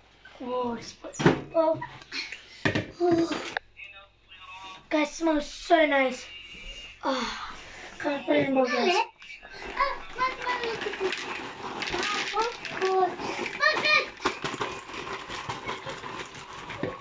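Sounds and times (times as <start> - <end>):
children's voices exclaiming: 8.2 - 11.1, 11.9 - 14.2
paper bag crackling: 9.5 - 17.0.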